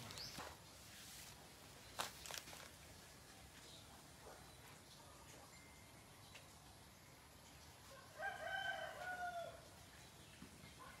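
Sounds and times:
rooster crowing: 7.9 - 9.7.

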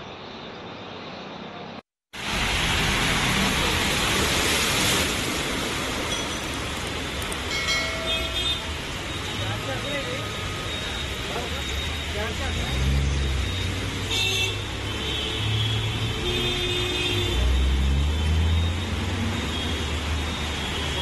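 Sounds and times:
heavy rain hiss: 2.2 - 11.4
tyres through standing water: 2.2 - 21.0.

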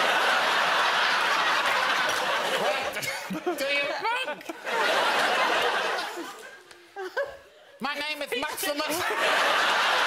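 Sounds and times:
studio audience laughing: 0.0 - 7.5, 8.4 - 10.0.

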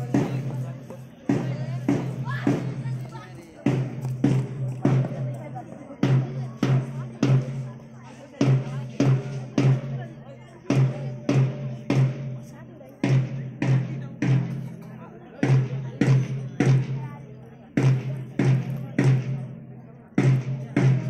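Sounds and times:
drums beating march rhythm: 0.0 - 21.0.

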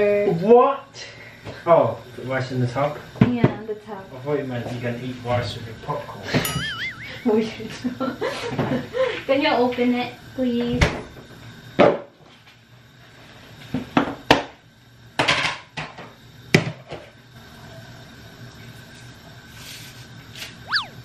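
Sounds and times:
plastic squeak: 20.6 - 21.0.

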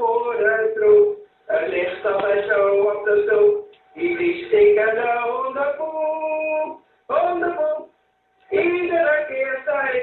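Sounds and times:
person singing: 8.5 - 10.0.

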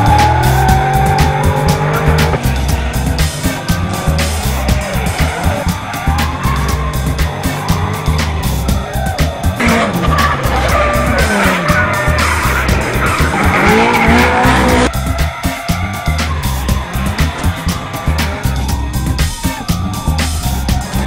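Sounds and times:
car engines revving: 0.0 - 21.0
music with heavy beat: 0.0 - 21.0
tyres squealing: 0.0 - 21.0.

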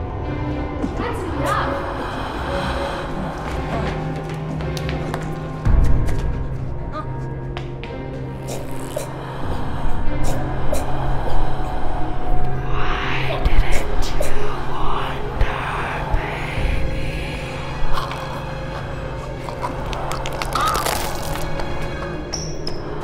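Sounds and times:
breathy voice sounds: 1.0 - 5.6, 8.2 - 23.0
low sustained drone notes: 9.1 - 20.4.

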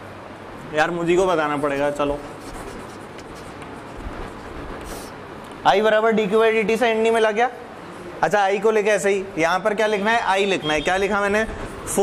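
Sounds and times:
chalk writing on chalkboard: 1.3 - 5.2.

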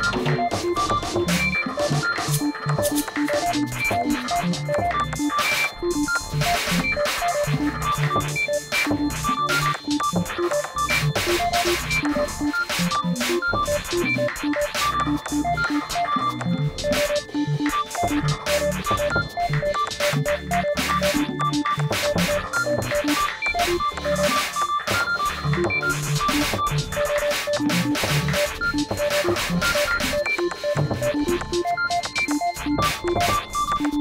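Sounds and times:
beep-like synthesizer notes: 0.0 - 34.0
low repeating bass pattern: 0.0 - 34.0.

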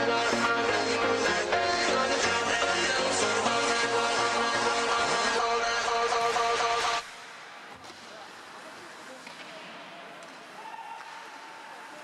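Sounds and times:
pop music over loudspeakers: 0.0 - 7.0
hockey sticks and skates knocking: 7.0 - 12.0.

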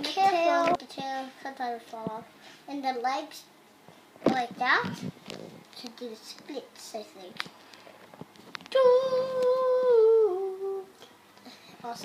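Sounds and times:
child humming: 8.8 - 11.1.

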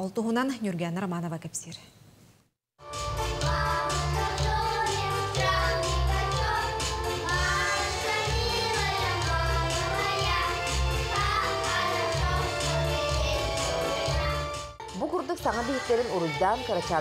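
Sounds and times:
girls singing together: 3.4 - 14.5.

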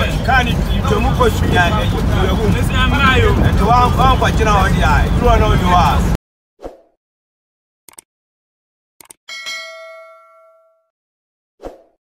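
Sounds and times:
bright bell ding: 9.3 - 10.9.

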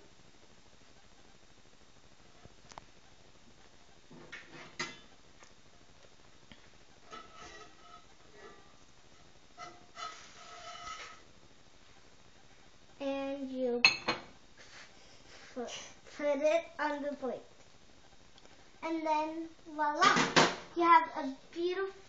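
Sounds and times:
spatula scraping a skillet: 7.0 - 11.3.

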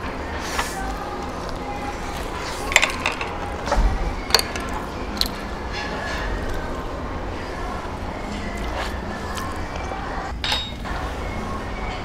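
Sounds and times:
quiet background music: 0.0 - 12.0
tableware clicking: 2.6 - 3.7, 10.3 - 10.9.

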